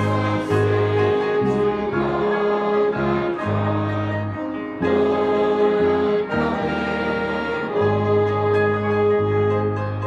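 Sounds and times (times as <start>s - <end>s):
congregation singing a hymn: 0.0s - 10.0s
instrumental accompaniment: 0.0s - 10.0s.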